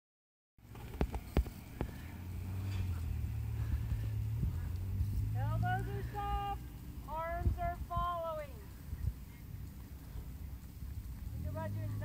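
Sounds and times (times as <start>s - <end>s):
steady low hum: 0.6s - 12.0s.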